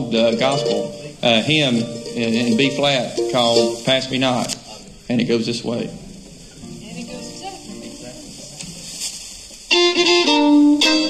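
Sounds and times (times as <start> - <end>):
faint held instrument notes: 0.0 - 4.5, 6.6 - 8.5, 9.6 - 11.0
low murmur of voices: 0.0 - 11.0.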